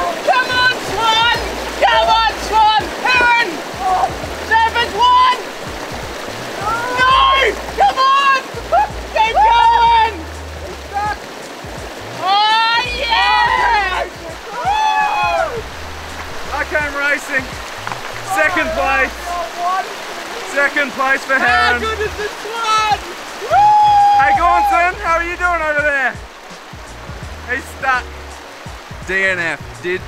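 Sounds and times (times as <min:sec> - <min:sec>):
people shouting and cheering: 0:00.0 - 0:05.7, 0:06.4 - 0:11.2, 0:12.1 - 0:17.5, 0:18.2 - 0:26.2
splashing of wading: 0:00.0 - 0:30.0
stream running over rocks: 0:00.0 - 0:30.0.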